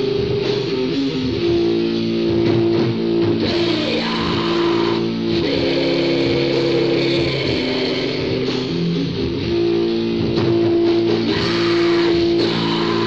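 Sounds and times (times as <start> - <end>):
bass guitar: 0.0 - 13.0
distorted electric guitar chords: 0.0 - 13.0.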